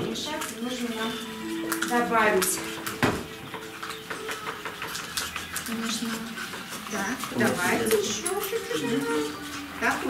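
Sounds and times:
quiet voices murmuring: 0:00.0 - 0:10.0
spoons clicking on plastic bowls: 0:00.0 - 0:10.0.

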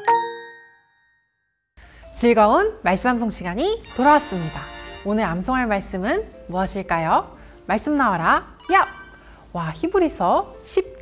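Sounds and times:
faint background music: 0:01.8 - 0:11.0
chime-like bell note: 0:08.6 - 0:09.3.

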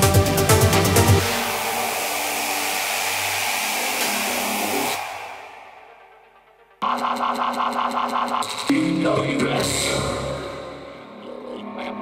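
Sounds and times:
synthesizer white noise wash: 0:00.0 - 0:09.0.

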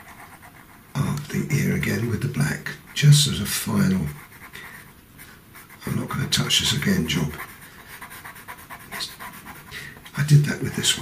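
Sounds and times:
pencil scratching on paper: 0:00.0 - 0:01.1, 0:01.7 - 0:04.9, 0:05.6 - 0:11.0.

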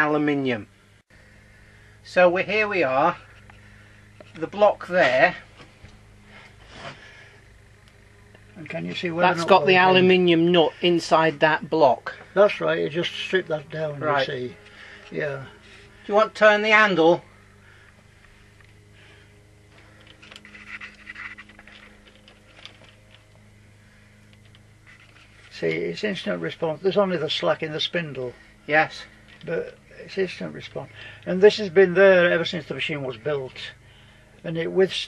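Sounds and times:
steady low hum: 0:00.0 - 0:35.0
soft breath: 0:17.3 - 0:20.2.

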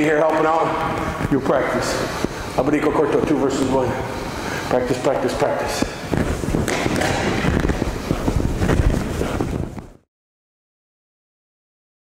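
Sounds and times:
microphone handling crackle: 0:00.1 - 0:03.4, 0:05.4 - 0:10.0.

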